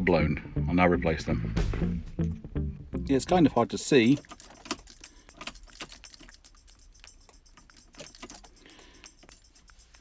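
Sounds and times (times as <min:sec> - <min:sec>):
small hard objects rattling: 0:04.0 - 0:10.0.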